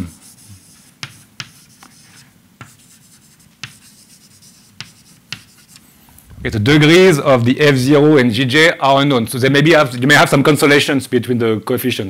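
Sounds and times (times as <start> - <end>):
chalk tapping on blackboard: 0.0 - 5.8
chalk scratching: 0.0 - 5.9.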